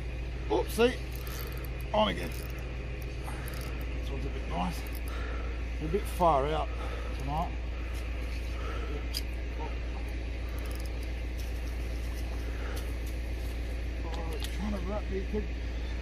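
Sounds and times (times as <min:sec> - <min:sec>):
low background rumble: 0:00.0 - 0:16.0.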